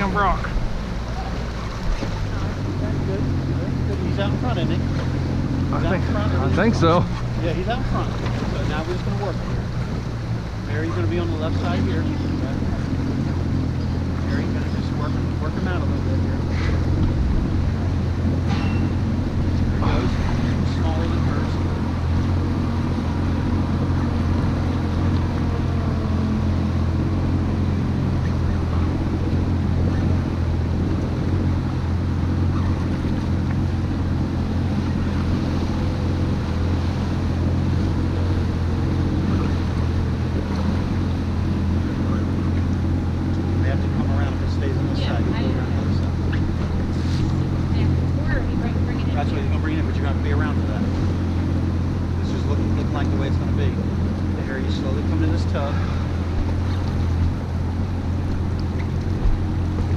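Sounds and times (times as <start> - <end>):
boat engine humming: 0.0 - 59.9
water noise: 0.0 - 59.9.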